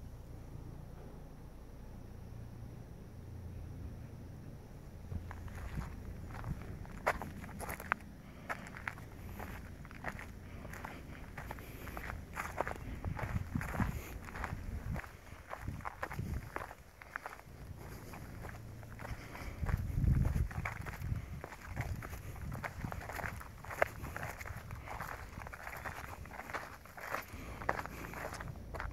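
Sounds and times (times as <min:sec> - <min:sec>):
steady low rumble: 0:00.0 - 0:28.9
crunching footsteps: 0:05.1 - 0:28.9.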